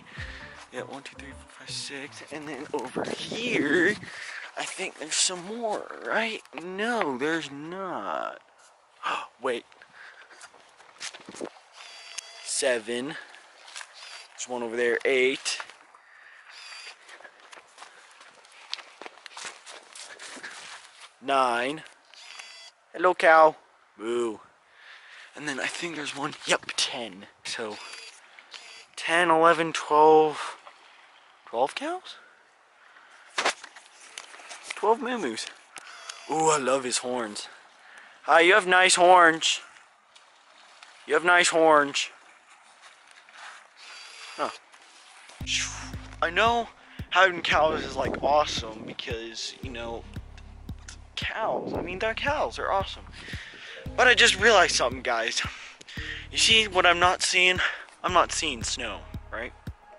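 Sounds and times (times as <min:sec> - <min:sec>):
footsteps on dry grass: 0:00.0 - 0:01.4, 0:51.8 - 0:56.0
person saying oh: 0:00.2 - 0:02.4, 0:45.4 - 0:47.0.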